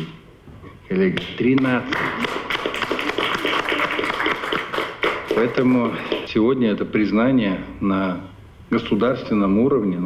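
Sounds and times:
crowd applauding: 0:01.6 - 0:06.3.

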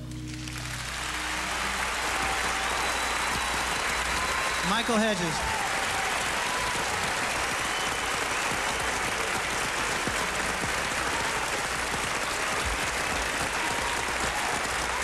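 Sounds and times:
large audience applauding: 0:00.0 - 0:15.0.

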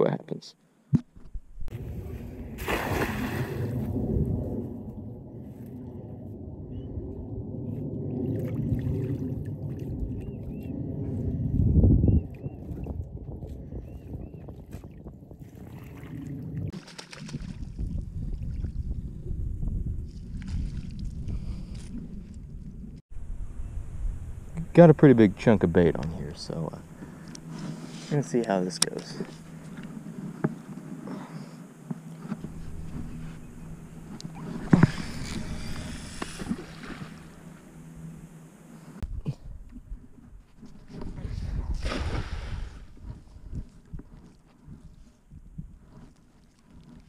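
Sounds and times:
steady low rumble: 0:01.3 - 0:14.0, 0:17.6 - 0:46.3
water sloshing and gurgling: 0:01.6 - 0:06.0, 0:07.6 - 0:13.7, 0:14.6 - 0:19.2, 0:20.0 - 0:23.0, 0:31.9 - 0:39.0
net splashing into water: 0:02.6 - 0:03.7.

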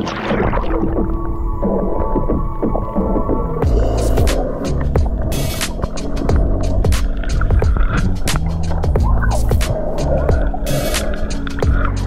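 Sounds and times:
muffled underwater rumble: 0:00.0 - 0:12.0
sharp underwater clicks: 0:00.0 - 0:12.0
water splash: 0:00.0 - 0:12.0.

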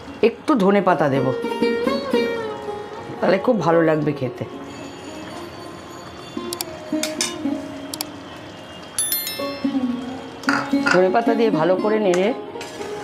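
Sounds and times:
bright bell-like chime: 0:09.0 - 0:10.4
melodic instrumental music: 0:09.0 - 0:10.8.

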